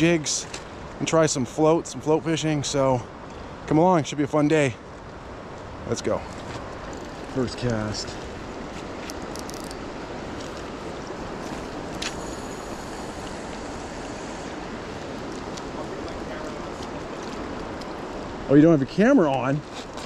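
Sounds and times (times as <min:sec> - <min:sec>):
river running over gravel: 0:03.7 - 0:20.0.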